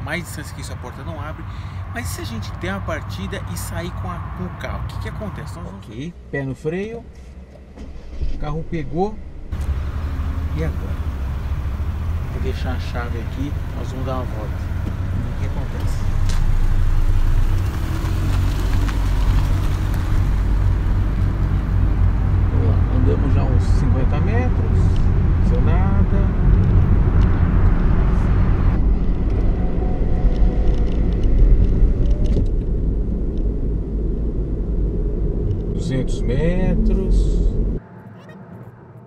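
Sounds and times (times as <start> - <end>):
car engine rumble: 0.0 - 39.0.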